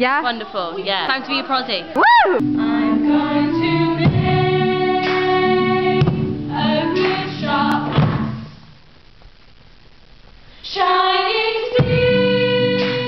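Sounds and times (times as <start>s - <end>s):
person singing: 2.2s - 7.9s, 10.7s - 13.0s
musical accompaniment: 2.4s - 8.5s.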